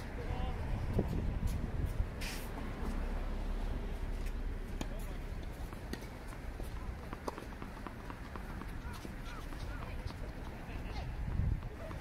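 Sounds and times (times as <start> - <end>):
wind rumble on microphone: 0.0 - 3.9, 8.7 - 12.0
soft footsteps on artificial grass: 0.9 - 7.3.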